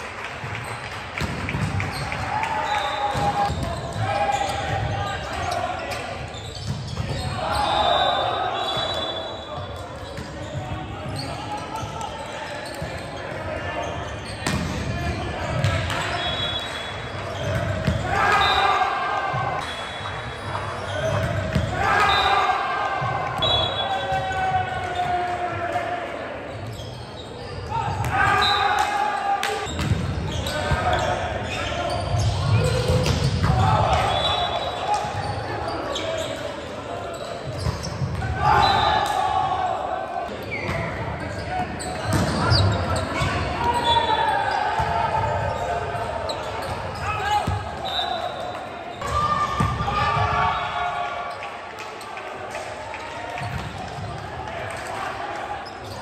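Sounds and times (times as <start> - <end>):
sneakers squeaking: 0.5 - 25.3, 26.4 - 39.2, 40.2 - 52.2, 53.4 - 54.2, 55.4 - 56.0
players shouting: 1.9 - 6.4, 7.1 - 26.9, 27.5 - 37.3, 38.2 - 56.0.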